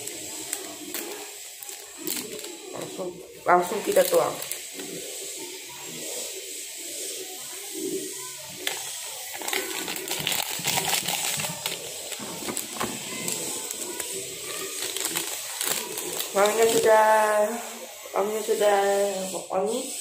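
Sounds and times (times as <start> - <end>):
plastic sachet crinkling: 0.0 - 3.0, 3.6 - 5.0, 8.6 - 17.2
steady hiss: 0.0 - 20.0.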